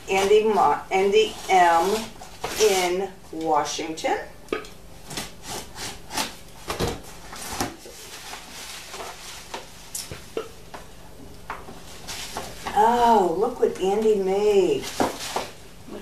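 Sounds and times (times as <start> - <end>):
plastic packing rustling: 5.0 - 10.4, 14.6 - 15.6.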